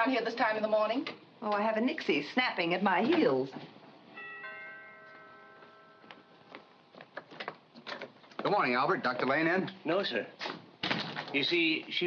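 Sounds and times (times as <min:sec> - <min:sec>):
two-note door chime: 0:04.2 - 0:06.4.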